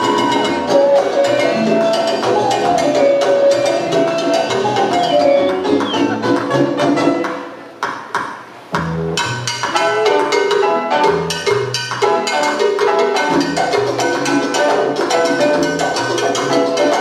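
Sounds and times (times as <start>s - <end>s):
salsa band playing: 0.0s - 17.0s.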